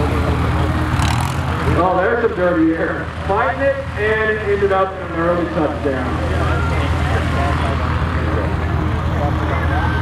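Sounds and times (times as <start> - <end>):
propeller plane engine drone: 0.0 - 10.0.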